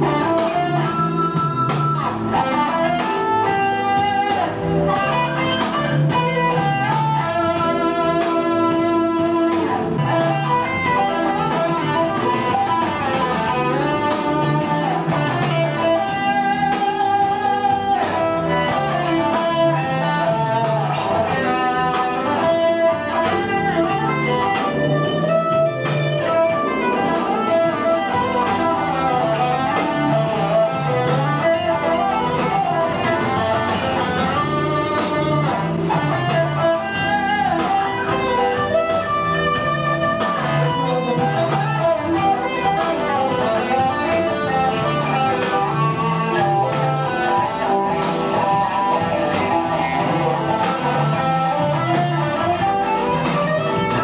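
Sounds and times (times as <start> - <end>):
electric guitar melody: 0.0 - 54.0.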